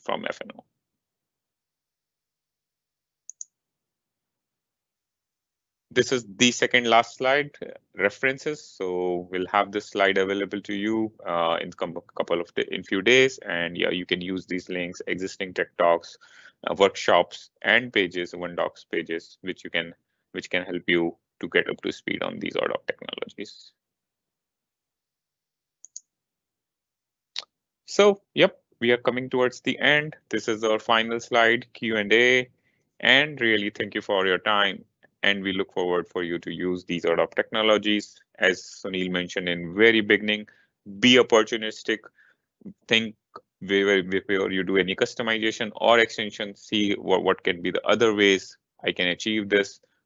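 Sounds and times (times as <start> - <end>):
computer clicks: 3.3 - 3.5, 25.8 - 26.1.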